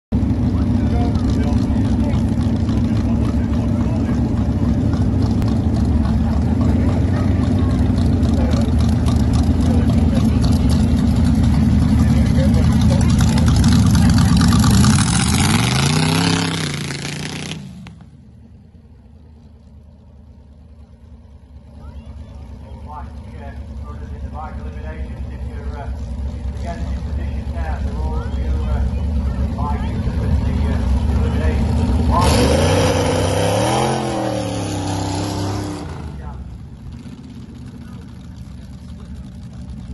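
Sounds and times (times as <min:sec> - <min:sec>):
voices: 0:00.2 - 0:15.2, 0:21.5 - 0:34.3
dragster engine revving: 0:00.2 - 0:18.2, 0:20.8 - 0:39.9.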